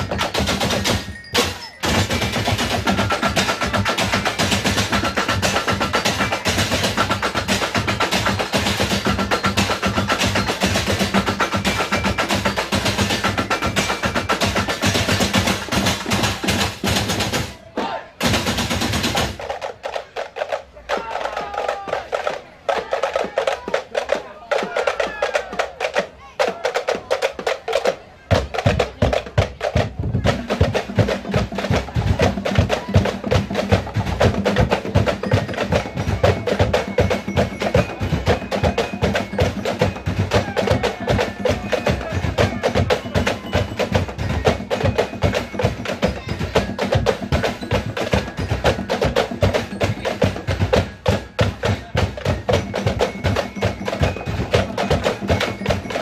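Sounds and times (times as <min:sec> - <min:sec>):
deep barrel drum beat: 0:00.0 - 0:17.6, 0:18.2 - 0:56.0.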